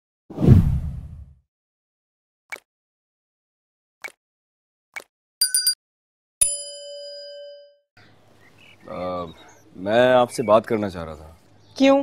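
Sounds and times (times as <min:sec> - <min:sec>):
whoosh with low boom: 0:00.3 - 0:01.4.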